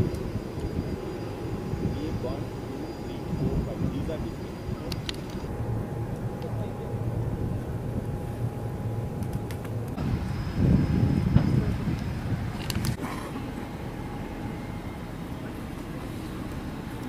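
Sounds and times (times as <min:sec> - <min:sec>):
steady low rumble: 0:00.0 - 0:17.0
people talking outdoors: 0:00.8 - 0:09.9.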